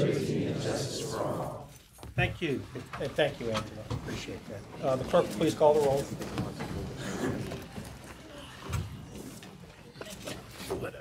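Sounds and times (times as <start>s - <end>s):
audience murmur: 0.0s - 1.7s, 6.2s - 10.6s
audience rustling: 0.0s - 10.6s.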